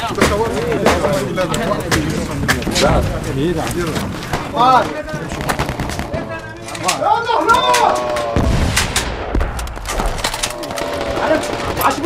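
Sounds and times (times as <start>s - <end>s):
gunfire shots: 4.2s - 6.4s.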